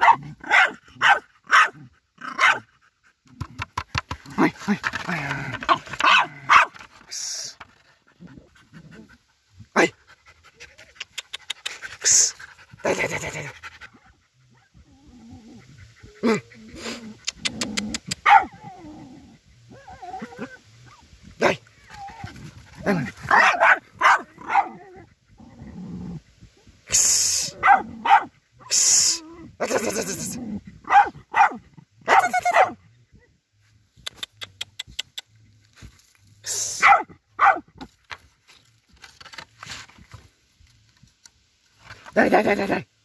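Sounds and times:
dog barking and yipping: 0.0 - 2.7, 5.7 - 6.8, 18.1 - 18.7, 23.2 - 25.0, 27.6 - 28.3, 30.8 - 32.8, 36.8 - 37.7.

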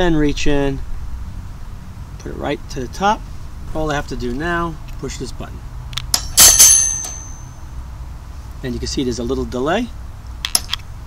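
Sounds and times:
wire cage door slamming shut: 6.2 - 7.4.

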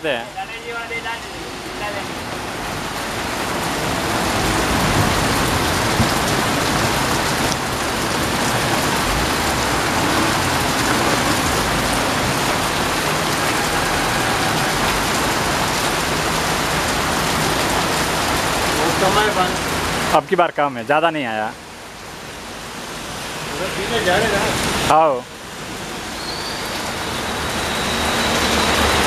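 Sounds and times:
heavy rain hitting road: 0.0 - 29.0.

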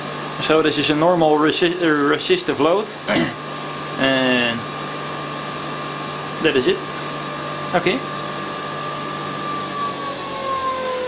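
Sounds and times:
electric motor whine winding down: 3.6 - 11.0.

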